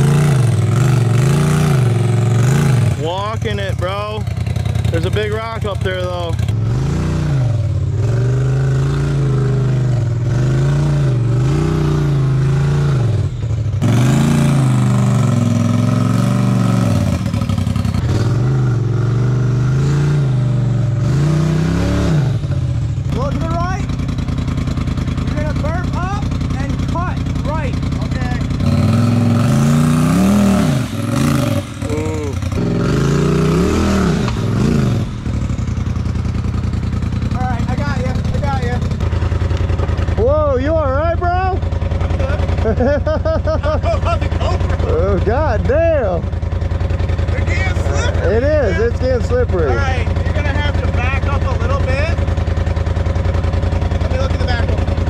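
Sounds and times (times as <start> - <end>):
off-road vehicle engine revving: 0.0 - 55.0.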